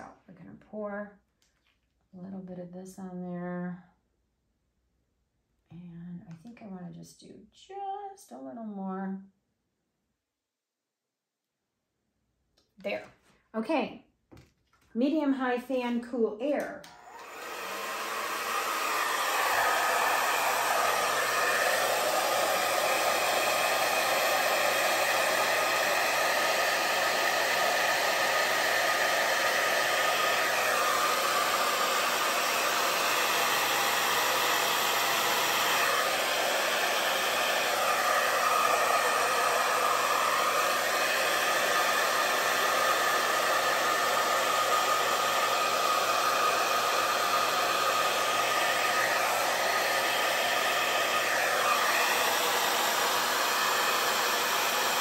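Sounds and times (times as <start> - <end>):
hair dryer running: 16.5 - 55.0.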